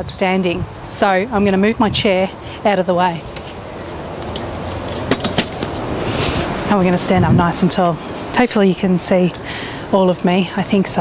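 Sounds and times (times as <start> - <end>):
metal chair legs scraping paving: 4.2 - 6.8.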